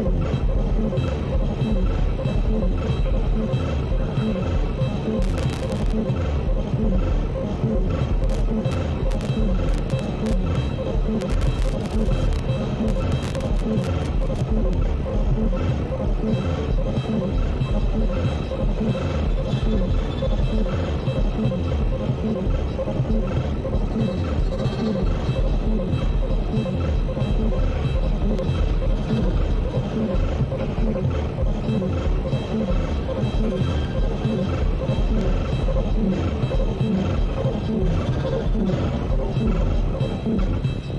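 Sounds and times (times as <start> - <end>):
electronic noise music: 0.0 - 40.9.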